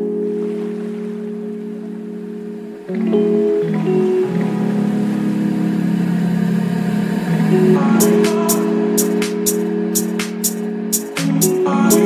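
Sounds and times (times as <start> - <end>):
sustained low music chords: 0.0 - 12.0.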